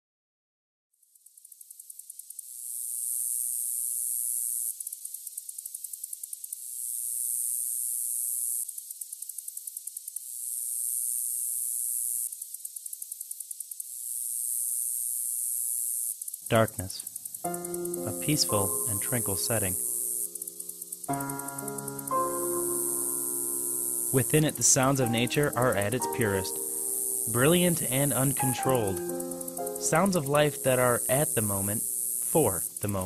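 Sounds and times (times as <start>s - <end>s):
high-pitched insect buzz and ticking: 1.0s - 33.0s.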